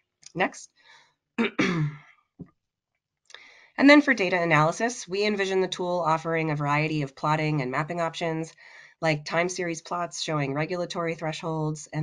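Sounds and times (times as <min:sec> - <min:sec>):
woman clearing her throat: 0:01.4 - 0:02.1.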